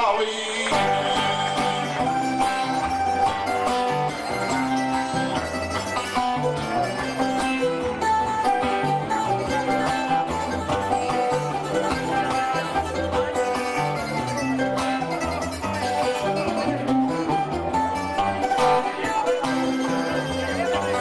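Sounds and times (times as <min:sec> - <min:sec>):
acoustic guitars playing: 0:00.0 - 0:21.0
bass line: 0:00.0 - 0:21.0.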